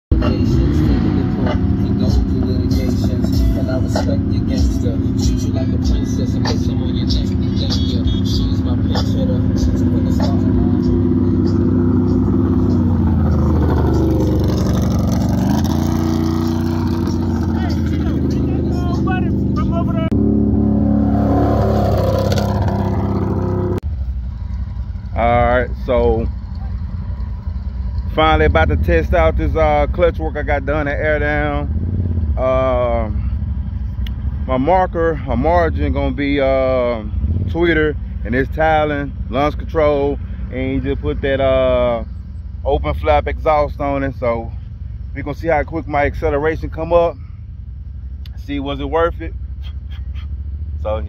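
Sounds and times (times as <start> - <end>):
music: 0.1 - 14.4
off-road vehicle engines running: 0.1 - 51.0
voices: 0.2 - 14.4, 16.2 - 20.2, 25.1 - 31.7, 34.5 - 47.2.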